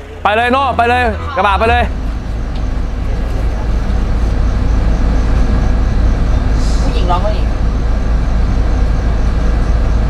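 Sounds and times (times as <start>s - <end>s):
coach bus rumble from inside: 0.0s - 10.0s.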